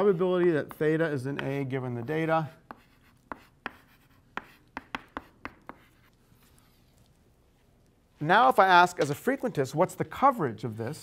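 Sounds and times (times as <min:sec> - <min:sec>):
chalk tapping on blackboard: 0:00.7 - 0:06.2.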